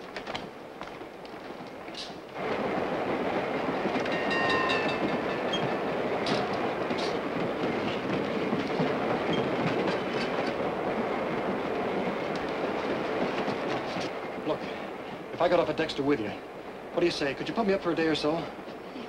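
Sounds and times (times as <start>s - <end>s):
rail joint clicks: 0.0s - 14.2s
train wheels rumbling on rails: 0.0s - 19.0s.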